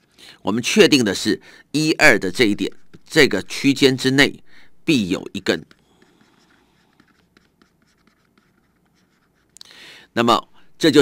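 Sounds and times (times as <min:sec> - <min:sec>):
stylus scratching on tablet: 0:00.0 - 0:00.8, 0:04.9 - 0:09.6.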